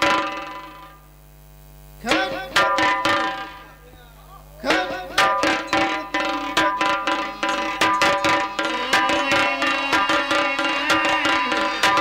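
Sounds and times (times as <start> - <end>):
barrel drum beating: 0.0 - 1.1, 2.1 - 3.8, 4.6 - 12.0
folk music with drum: 0.0 - 1.1, 2.0 - 12.0.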